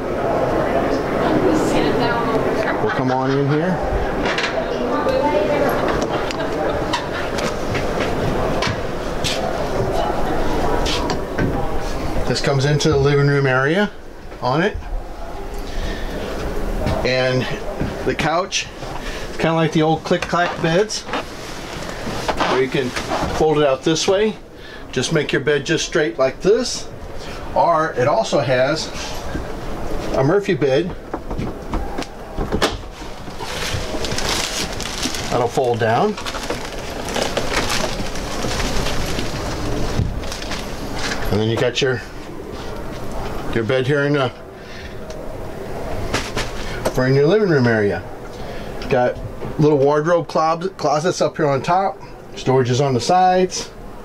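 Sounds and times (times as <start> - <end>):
steady background noise: 0.0 - 54.0
plastic-wrapped mattress rustling: 19.4 - 24.3, 32.7 - 42.8.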